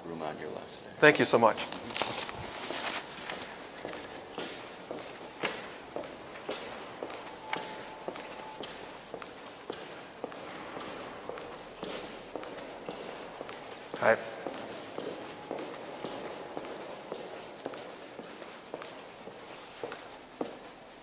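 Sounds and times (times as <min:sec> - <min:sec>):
footsteps on stone floor: 0:01.6 - 0:21.0.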